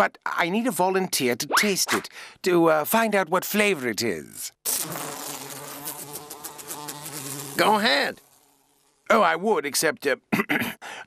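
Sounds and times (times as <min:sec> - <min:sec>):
cartoon fly buzzing: 0:04.6 - 0:09.1.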